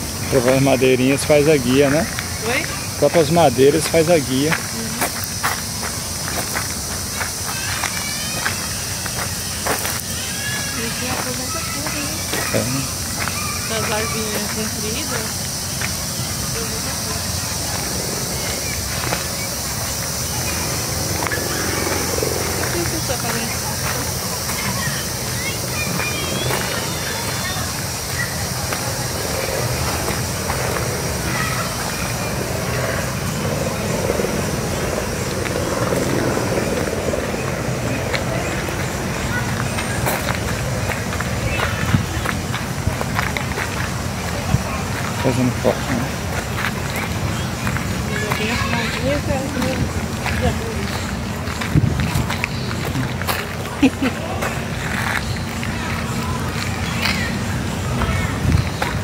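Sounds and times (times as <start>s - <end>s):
indistinct voices: 0.0s - 59.0s
footsteps on dirt path: 1.7s - 59.0s
steady low rumble: 15.4s - 45.1s.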